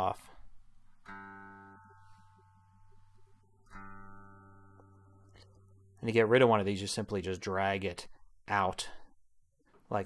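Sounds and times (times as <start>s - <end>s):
electric guitar notes ringing: 1.0s - 6.0s.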